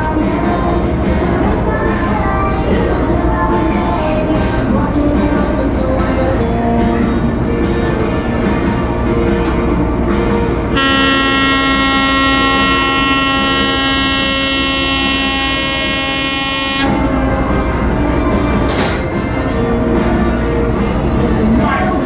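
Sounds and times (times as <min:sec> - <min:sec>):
ship's horn blast: 0:10.7 - 0:17.1.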